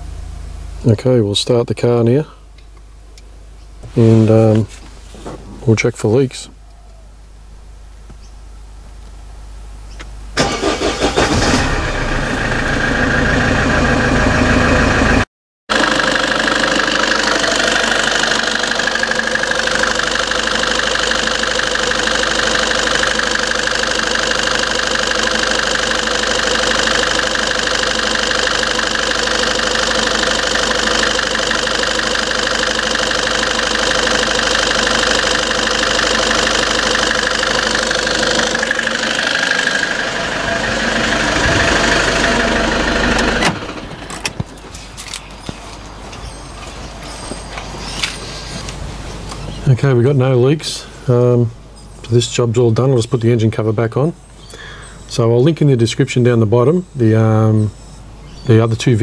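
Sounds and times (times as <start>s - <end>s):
diesel engine starting and idling: 3.8s - 6.5s, 10.3s - 51.6s.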